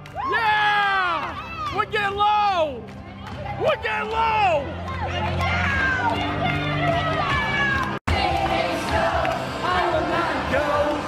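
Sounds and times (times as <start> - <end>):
loud dance club music: 3.6 - 11.0.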